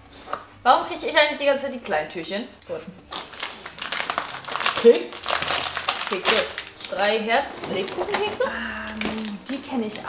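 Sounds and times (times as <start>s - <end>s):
cardboard and wrapper crinkling: 3.0s - 10.0s
person speaking: 7.6s - 10.0s.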